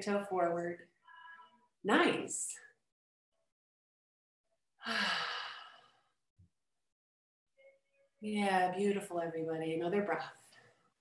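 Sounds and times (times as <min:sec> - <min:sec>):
woman sighing: 0:04.8 - 0:05.9.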